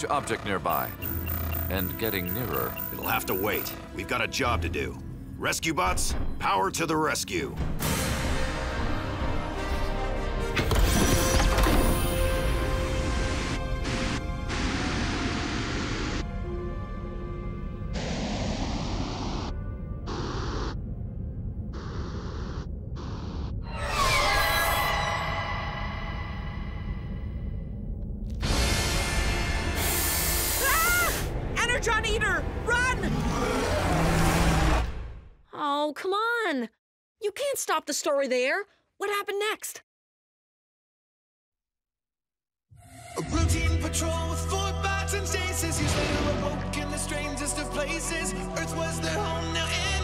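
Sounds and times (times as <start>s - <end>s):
sci-fi sound effects: 0.0s - 3.8s, 13.0s - 16.4s, 17.9s - 27.6s
tense dramatic music: 0.0s - 35.4s.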